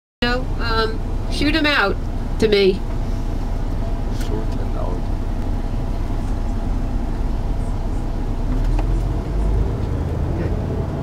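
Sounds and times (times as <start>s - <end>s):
coach engine and road rumble: 0.2s - 11.0s.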